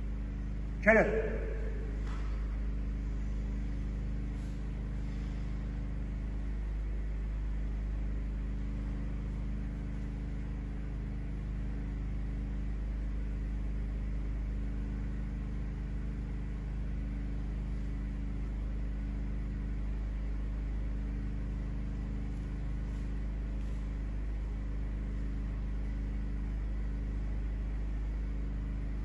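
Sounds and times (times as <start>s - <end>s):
low background hum: 0.0s - 29.0s.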